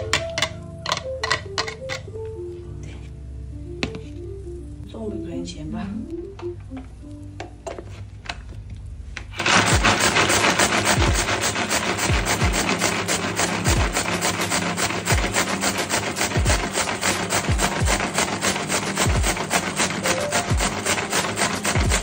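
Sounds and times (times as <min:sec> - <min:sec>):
food chopper grinding and rattling: 0:09.3 - 0:22.0
background music with deep bass: 0:09.4 - 0:22.0.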